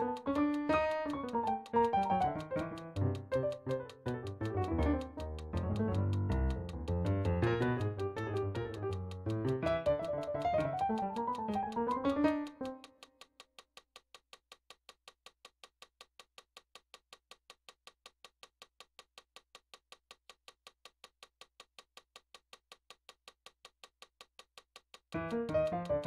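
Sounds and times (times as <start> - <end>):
faint ticking: 0.0 - 26.0.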